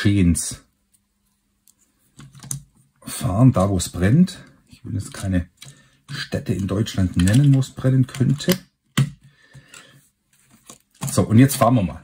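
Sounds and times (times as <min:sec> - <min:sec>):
plastic toy clicking: 0:07.1 - 0:08.6.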